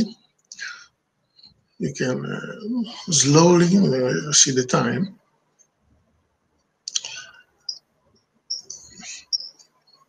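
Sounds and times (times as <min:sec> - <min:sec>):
high-pitched chirping: 0:08.5 - 0:10.0.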